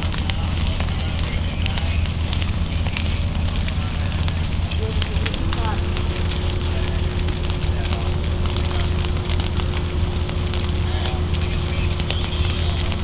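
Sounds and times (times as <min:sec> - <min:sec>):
faint steady hum: 0:00.0 - 0:13.0
grass fire crackling: 0:00.0 - 0:13.0
low rumble of fire: 0:00.0 - 0:13.0.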